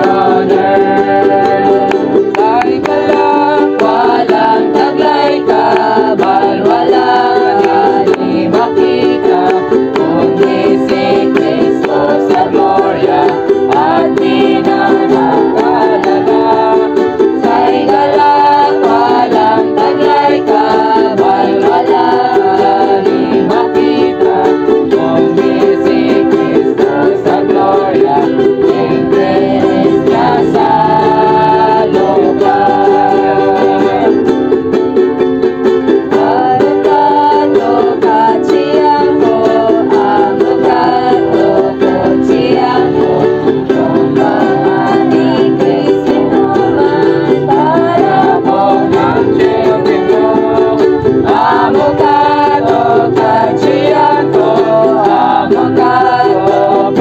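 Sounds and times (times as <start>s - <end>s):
group singing a hymn: 0.0s - 57.0s
ukuleles strumming chords: 0.0s - 57.0s.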